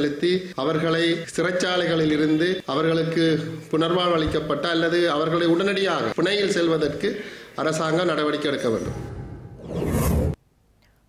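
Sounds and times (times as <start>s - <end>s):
rising swoosh: 8.8s - 10.4s.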